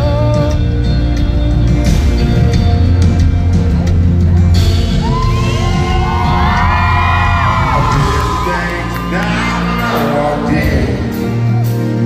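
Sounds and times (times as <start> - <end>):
live band playing: 0.0 - 12.0
crowd screaming and cheering: 3.0 - 12.0.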